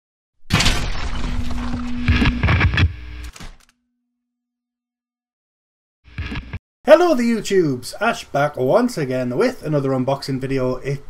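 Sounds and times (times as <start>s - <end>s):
impact and crash effects: 0.5s - 3.7s.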